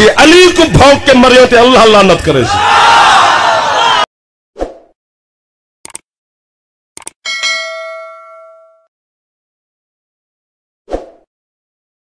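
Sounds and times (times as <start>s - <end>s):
bell ding: 7.3s - 8.9s.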